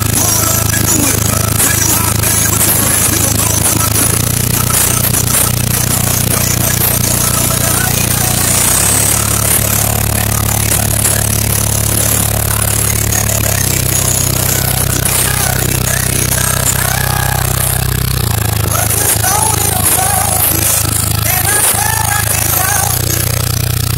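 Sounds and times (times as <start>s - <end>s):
deep subwoofer bass notes: 0.0s - 23.9s.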